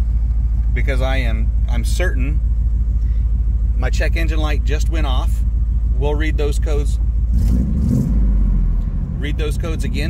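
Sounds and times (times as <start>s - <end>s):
pickup truck engine idling: 0.0s - 10.0s.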